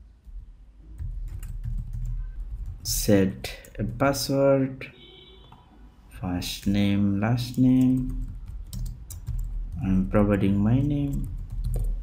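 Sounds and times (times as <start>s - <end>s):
keyboard typing: 0.2s - 4.2s, 7.4s - 12.0s.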